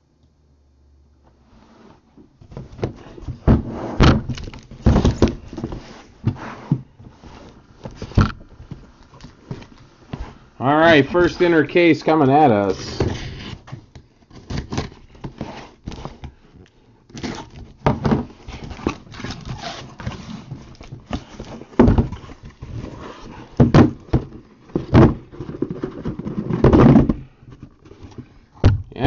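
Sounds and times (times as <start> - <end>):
cardboard scraping: 1.4 - 16.5, 17.1 - 28.5
box cutter slitting packing tape: 17.1 - 17.8.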